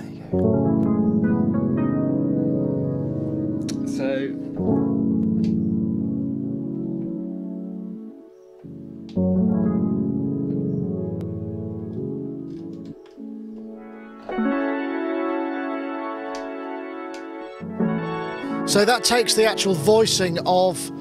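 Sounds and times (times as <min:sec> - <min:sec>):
synthesizer chords: 0:00.0 - 0:21.0.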